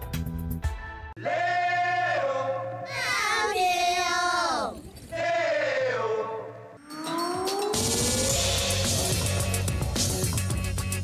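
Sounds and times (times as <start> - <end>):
layered voices: 1.2 - 9.4.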